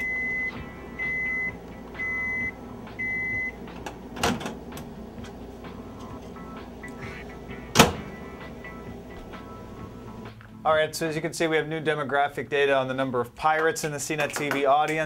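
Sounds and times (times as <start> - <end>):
microwave beeping: 0.0 - 10.3
clunk at microwave: 7.7 - 8.1
microwave door bang: 7.7 - 8.2.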